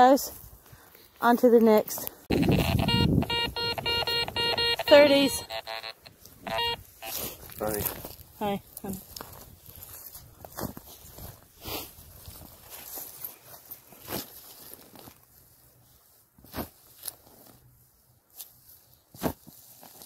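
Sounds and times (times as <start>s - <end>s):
footsteps on grass: 6.1s - 17.6s.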